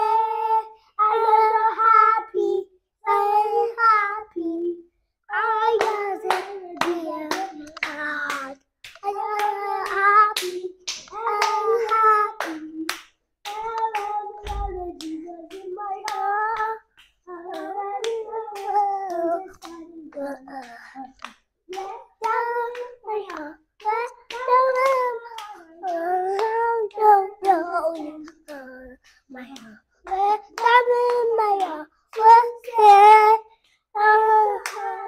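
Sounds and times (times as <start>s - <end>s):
children singing: 0.0s - 35.0s
hands clapping: 5.7s - 33.8s, 34.6s - 35.0s.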